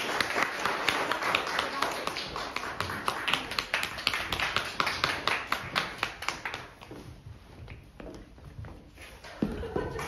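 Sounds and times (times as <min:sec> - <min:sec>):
applause: 0:00.0 - 0:06.9
individual hand claps: 0:00.0 - 0:07.0.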